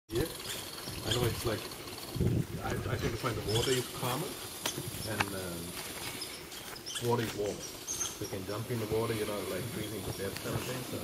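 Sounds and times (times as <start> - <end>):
people talking: 0.1 - 0.4, 1.0 - 1.7, 2.6 - 4.4, 5.0 - 5.8, 7.0 - 7.6, 8.2 - 11.0.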